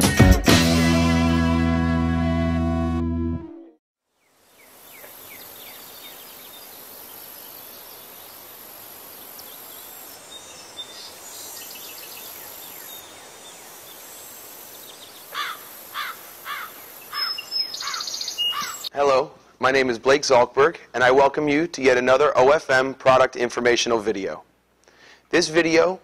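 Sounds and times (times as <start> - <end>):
steady hiss: 4.2 - 18.2
birds chirping: 4.5 - 18.9.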